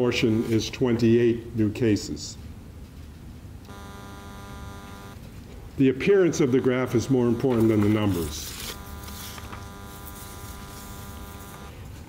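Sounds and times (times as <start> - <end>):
steady electrical buzz: 3.5 - 12.0.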